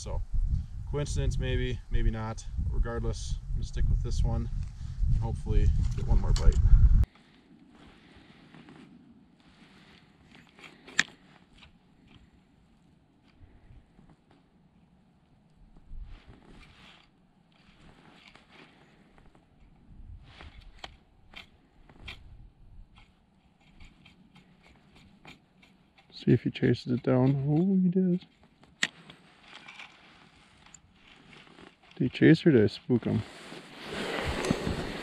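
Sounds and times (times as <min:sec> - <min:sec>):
rustling of winter clothing: 0:06.9 - 0:26.0, 0:28.3 - 0:35.0.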